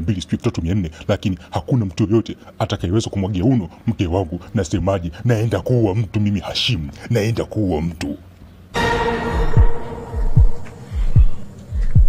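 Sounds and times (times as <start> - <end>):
steady held drone: 8.7 - 12.0
low heartbeat-like thumps: 8.8 - 12.0.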